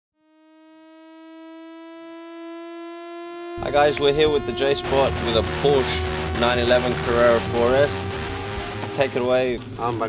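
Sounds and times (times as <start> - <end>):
sustained synthesized note: 0.2 - 9.9.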